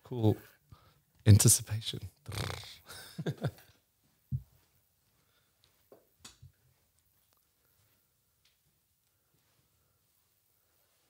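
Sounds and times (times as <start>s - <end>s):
men laughing: 2.9s - 3.8s.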